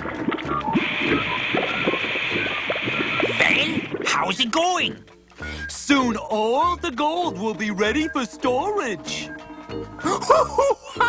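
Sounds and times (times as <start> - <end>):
molten metal pouring hiss: 0.0 - 4.0
background music: 0.0 - 11.0.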